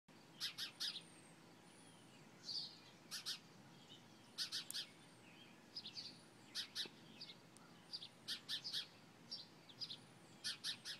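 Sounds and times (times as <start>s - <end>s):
birds chirping: 0.1s - 10.9s.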